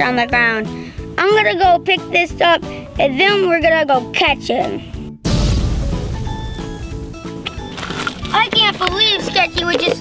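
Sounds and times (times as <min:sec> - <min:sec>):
music of short held notes: 0:06.3 - 0:10.0.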